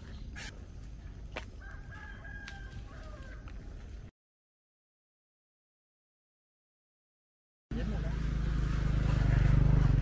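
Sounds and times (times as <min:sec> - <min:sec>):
rooster crowing: 0:01.6 - 0:03.6.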